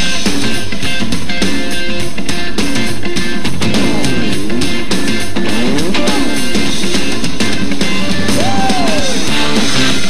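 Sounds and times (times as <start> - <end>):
drum kit: 0.0 - 10.0
rock guitar with gliding notes: 0.0 - 10.0.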